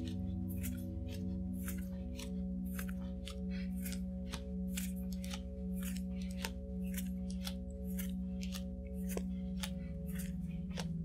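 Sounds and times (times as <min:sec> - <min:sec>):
ambient music drone: 0:00.0 - 0:11.0.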